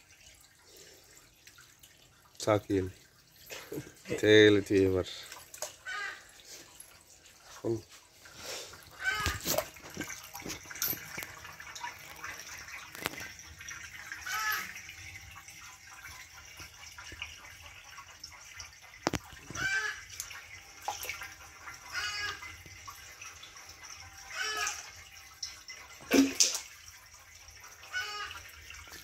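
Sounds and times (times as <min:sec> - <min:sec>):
water trickling: 0:00.0 - 0:29.0.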